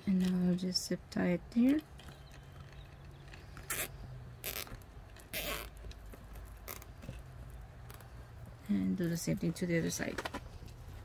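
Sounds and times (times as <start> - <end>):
zip tie pulled through lock: 3.3 - 7.2.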